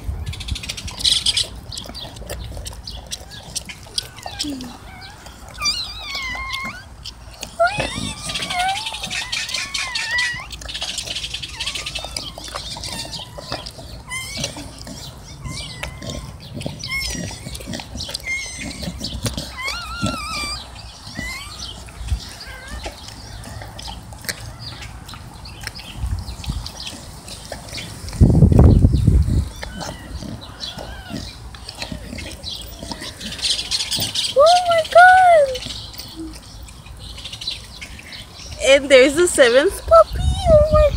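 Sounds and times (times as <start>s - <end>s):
puppies squealing and whimpering: 0.0s - 40.9s.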